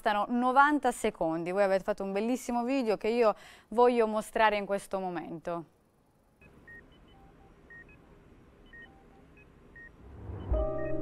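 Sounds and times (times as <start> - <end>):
low background hum: 0.1 - 10.7
patient monitor beeps: 6.4 - 8.0, 8.6 - 11.0.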